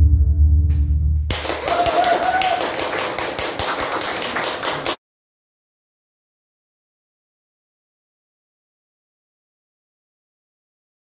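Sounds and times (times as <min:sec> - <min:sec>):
audience clapping: 0:01.3 - 0:05.0.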